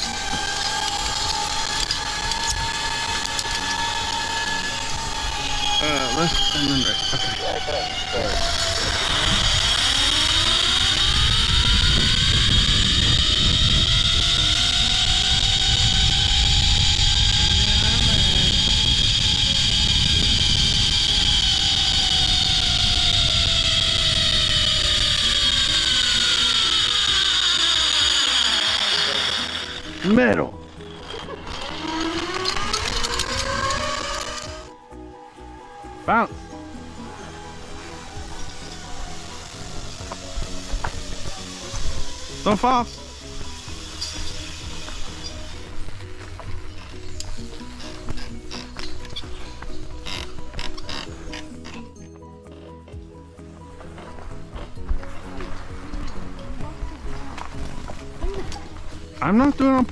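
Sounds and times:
pulleys whining on a cable: 0.0s - 59.9s
wind on microphone: 4.0s - 27.2s.

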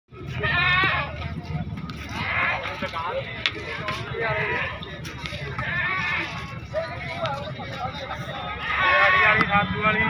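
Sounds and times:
people talking: 0.1s - 10.0s
goat bleating: 0.2s - 1.2s, 5.6s - 6.4s.

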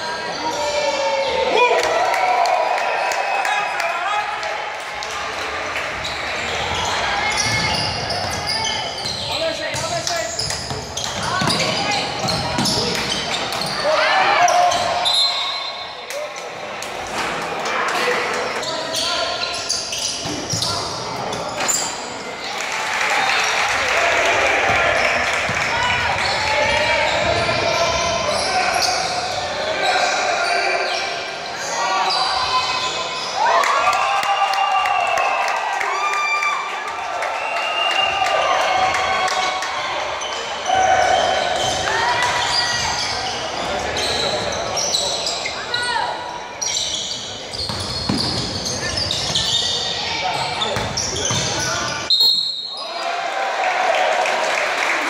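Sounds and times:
sneakers squeaking on wooden floor: 5.9s - 15.9s, 18.4s - 22.2s, 40.2s - 52.8s.

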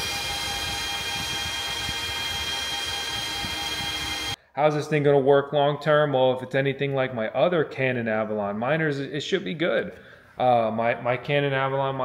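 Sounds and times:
cooling fans rushing air: 0.0s - 4.4s
high steady whining tones: 0.0s - 4.4s.

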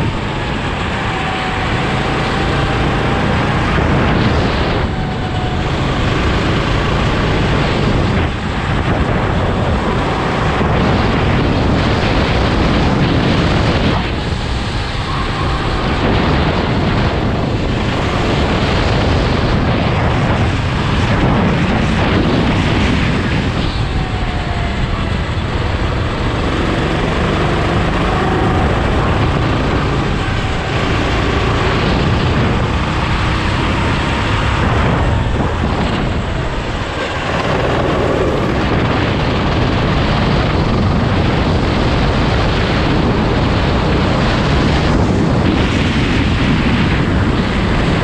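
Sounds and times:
go-kart engine running: 0.0s - 48.0s
wind buffeting microphone: 0.0s - 48.0s.

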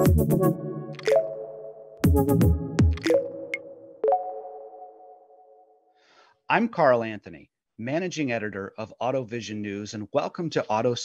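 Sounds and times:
synth chord ringing: 0.0s - 5.8s.

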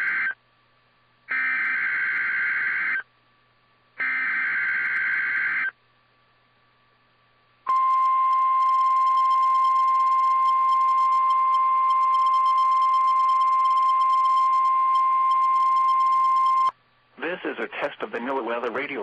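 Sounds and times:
steady high alarm tone: 4.0s - 5.7s, 7.7s - 16.7s.

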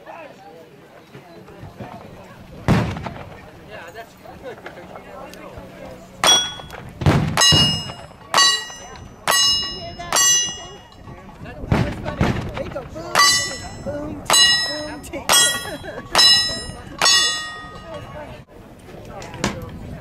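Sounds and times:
gunshots: 2.7s - 3.4s
steel plate ringing: 6.2s - 6.8s, 7.4s - 11.2s, 13.2s - 18.2s.

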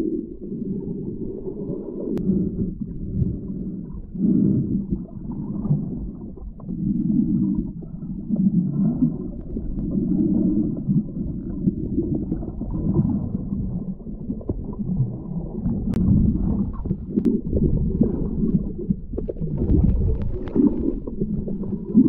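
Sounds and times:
underwater river rumble and gurgle: 0.0s - 22.0s.

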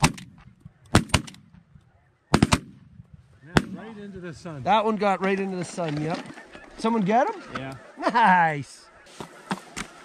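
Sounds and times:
shotgun shots: 0.0s - 1.6s, 2.3s - 2.8s.

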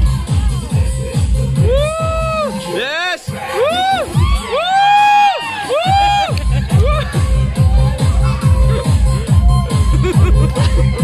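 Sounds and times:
children shouting and cheering: 0.0s - 11.0s
dance music with bass drum: 0.0s - 11.0s.

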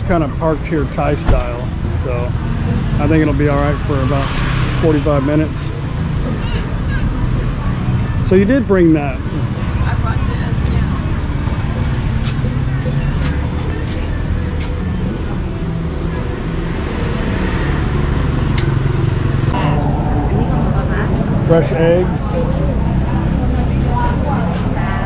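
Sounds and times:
traffic noise: 0.0s - 25.0s.

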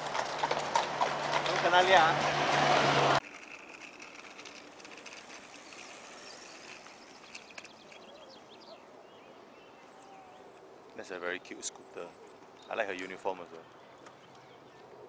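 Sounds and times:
loud street noise: 0.0s - 3.2s.

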